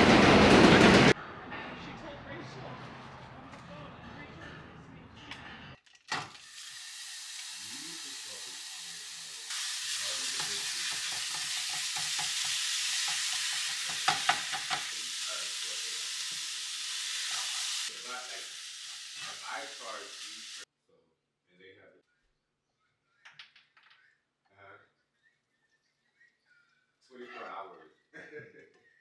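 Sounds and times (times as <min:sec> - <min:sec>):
meat sizzling in frying pan: 0:06.4 - 0:20.6
spatula scraping and tapping pan: 0:10.4 - 0:14.9.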